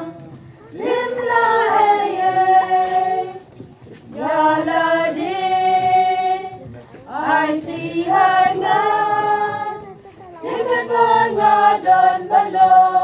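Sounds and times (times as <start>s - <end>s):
choir singing a hymn: 0.0s - 13.0s.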